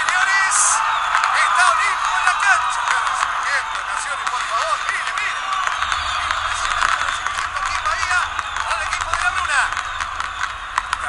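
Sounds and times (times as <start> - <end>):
shrill calls: 0.0 - 11.0
stadium crowd cheering: 0.0 - 11.0.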